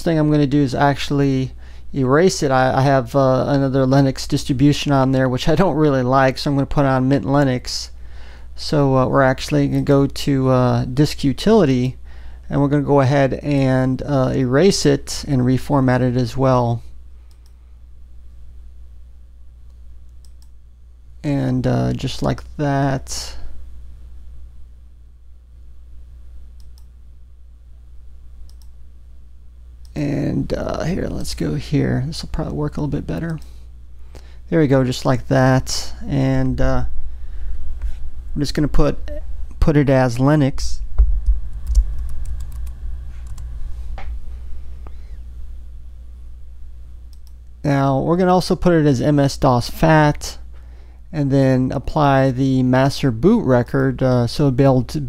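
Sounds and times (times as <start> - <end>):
low steady hum: 0.0 - 55.0
faint mouse clicks: 17.3 - 17.6, 19.7 - 20.6, 26.6 - 26.9, 28.5 - 28.8, 47.1 - 47.5.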